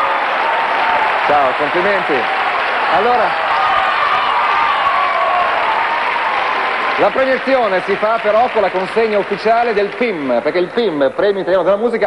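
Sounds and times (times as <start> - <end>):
audience applauding: 0.0 - 11.8.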